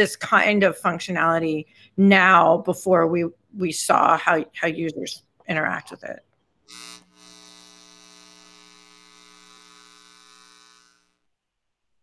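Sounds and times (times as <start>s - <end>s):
electrical buzz: 6.6s - 11.4s.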